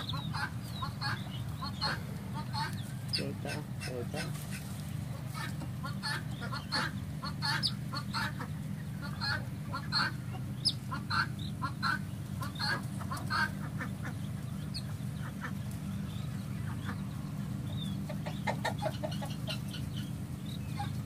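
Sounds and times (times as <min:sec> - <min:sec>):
steady low hum: 0:00.0 - 0:21.0
young pheasants chirping: 0:00.0 - 0:21.0.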